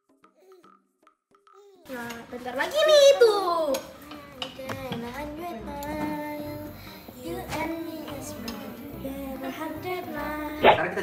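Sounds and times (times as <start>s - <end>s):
music: 0.0s - 11.0s
child singing without words: 3.3s - 10.7s.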